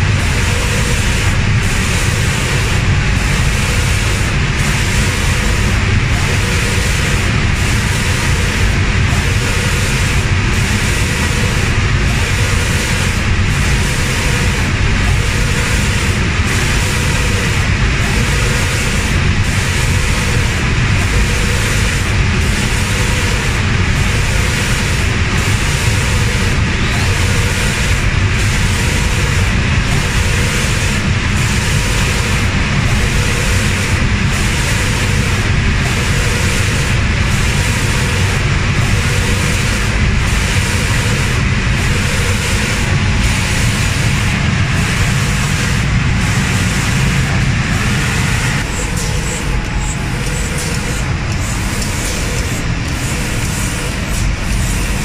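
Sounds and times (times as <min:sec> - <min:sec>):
spray-painting machine hiss and roar: 0:00.0 - 0:55.0.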